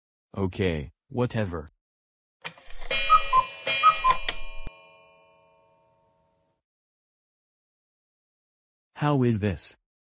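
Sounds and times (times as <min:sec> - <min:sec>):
cartoon clock clicking and ringing: 0:02.4 - 0:06.5.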